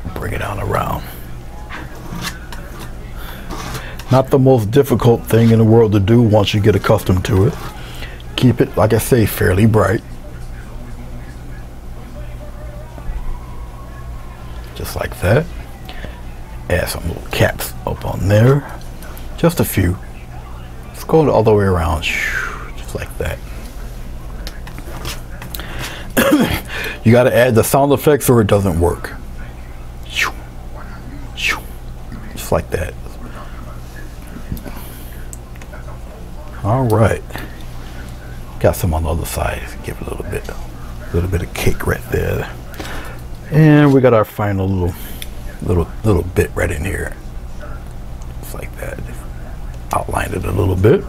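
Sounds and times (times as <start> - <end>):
low electrical hum: 0.0 - 51.0
man coughing: 26.2 - 26.8.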